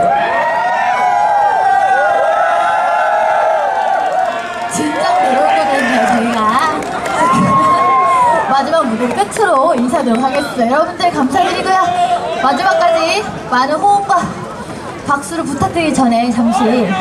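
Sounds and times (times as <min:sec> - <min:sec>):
crowd cheering and shouting: 0:00.0 - 0:17.0.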